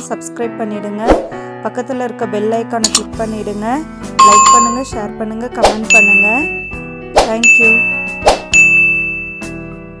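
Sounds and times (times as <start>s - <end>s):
bright bell ding: 4.2s - 4.9s, 5.9s - 6.8s, 7.4s - 9.6s
short sharp swish: 8.2s - 8.5s.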